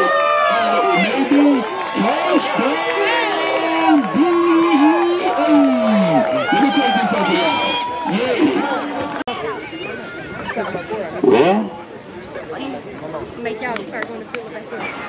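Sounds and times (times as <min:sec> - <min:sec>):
spectators yelling and cheering: 0:00.0 - 0:12.6.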